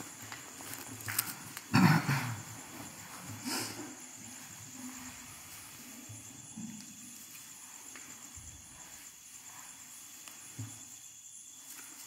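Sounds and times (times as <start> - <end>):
rustle and thump on mats: 2.4 - 12.0.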